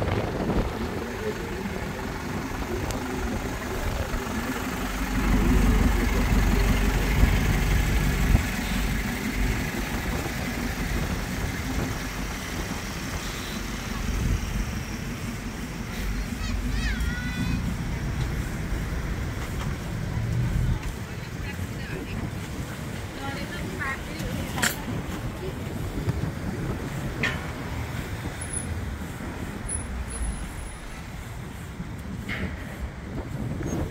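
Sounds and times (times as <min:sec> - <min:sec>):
car engines idling: 0:00.0 - 0:33.9.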